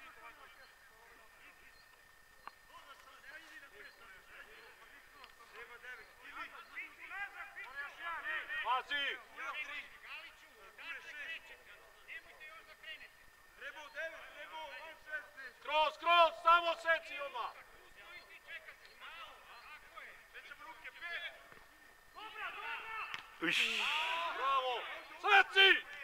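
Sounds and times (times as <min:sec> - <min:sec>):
distant men shouting: 0:22.1 - 0:26.0.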